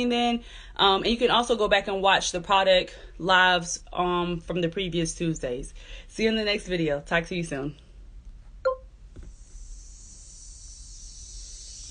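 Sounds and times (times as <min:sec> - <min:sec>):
high recording hiss: 0:08.5 - 0:11.9.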